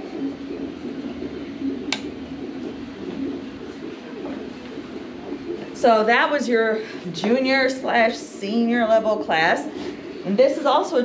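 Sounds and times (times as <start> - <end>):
low wavering murmur: 0.0 - 11.0.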